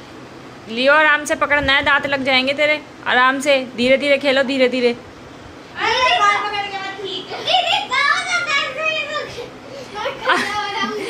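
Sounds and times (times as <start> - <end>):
children squealing and calling out: 7.2 - 11.0.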